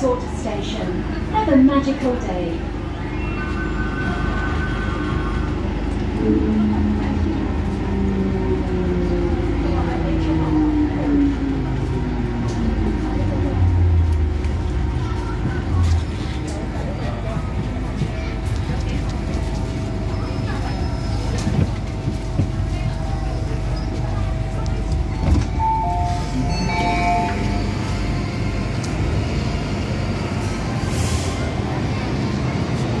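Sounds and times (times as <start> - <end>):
train car running rumble: 0.0 - 33.0.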